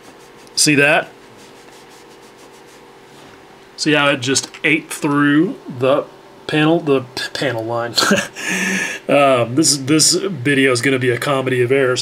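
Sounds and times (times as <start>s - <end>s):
paper towel scrubbing mat: 0.0s - 3.4s.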